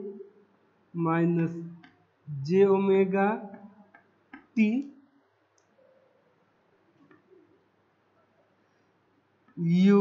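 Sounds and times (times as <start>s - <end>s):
man speaking: 1.0s - 3.6s, 4.4s - 4.9s, 9.6s - 10.0s.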